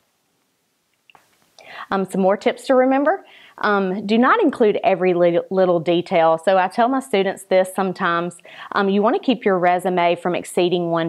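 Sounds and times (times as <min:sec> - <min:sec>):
breathy intake of breath: 0:03.3 - 0:03.6, 0:08.4 - 0:08.7.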